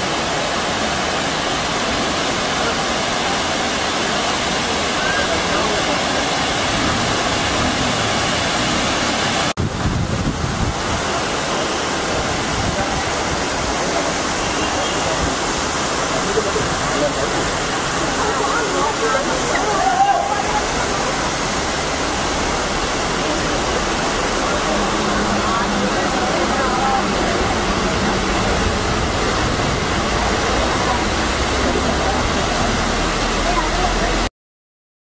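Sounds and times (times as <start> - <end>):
waterfall rushing: 0.0 - 34.3
indistinct voices: 11.5 - 34.3.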